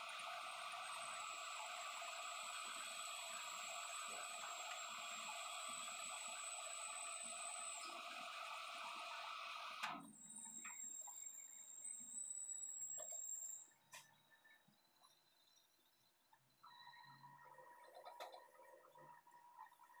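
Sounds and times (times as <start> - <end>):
metal lathe whirring: 0.0 - 13.7.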